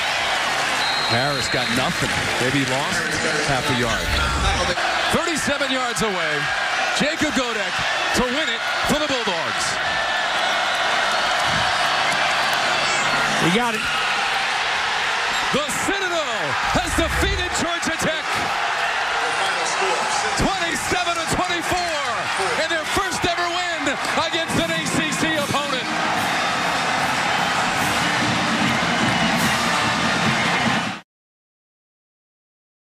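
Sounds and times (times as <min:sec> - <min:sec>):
people cheering and shouting: 0:00.0 - 0:31.0
stadium crowd noise: 0:00.0 - 0:31.0.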